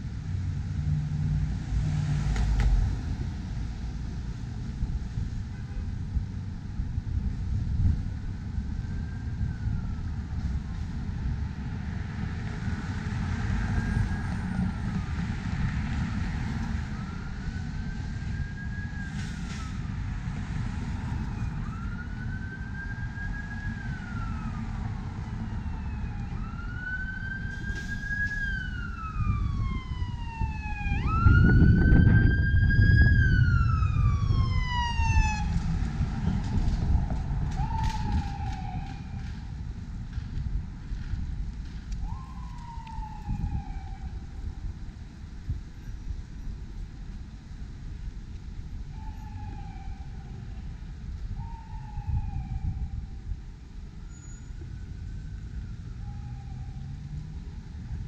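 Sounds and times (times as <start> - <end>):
road traffic: 0.0 - 58.0
emergency siren wailing: 8.4 - 39.8, 41.9 - 44.7, 48.8 - 58.0.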